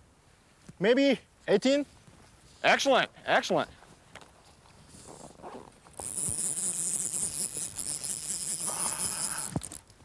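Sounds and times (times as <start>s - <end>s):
fishing reel drag whirring: 5.9s - 9.9s.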